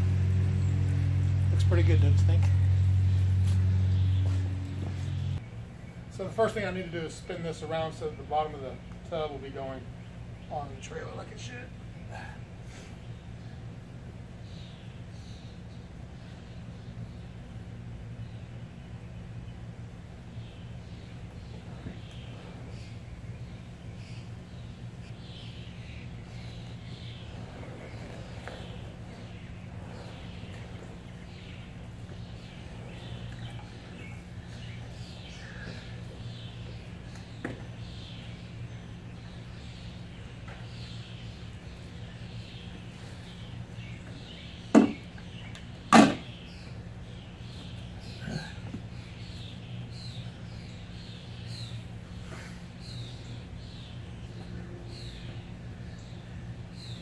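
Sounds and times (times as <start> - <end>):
bird chirps: 0.0 - 6.4
steady low hum: 0.0 - 57.0
sharp knocks of hot tub: 44.7 - 45.1, 45.9 - 46.3.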